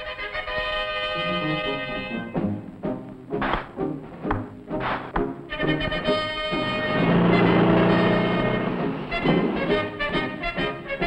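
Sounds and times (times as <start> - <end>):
orchestral score: 0.0 - 11.0
rushing motor-like whir: 6.7 - 9.6.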